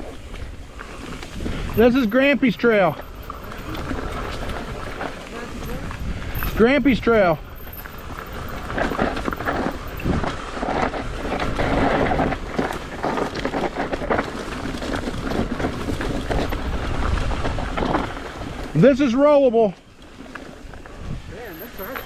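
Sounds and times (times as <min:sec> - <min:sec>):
wind on microphone: 0:00.0 - 0:02.0, 0:03.3 - 0:18.7, 0:20.7 - 0:21.5
bike rattling and knocking: 0:00.0 - 0:19.3
tyres crunching over dirt and stones: 0:00.0 - 0:22.0.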